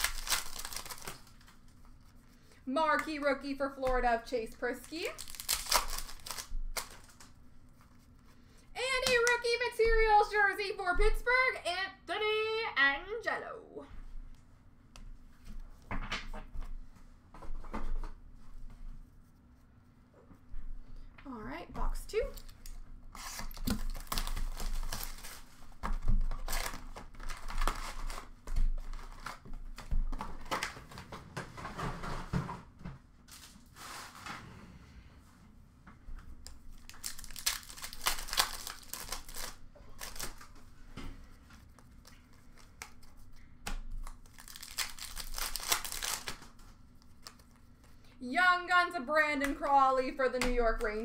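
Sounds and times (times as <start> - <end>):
wrapper crinkling: 0.0 - 2.1, 4.6 - 7.4, 22.3 - 29.8, 36.5 - 40.6, 44.0 - 47.6.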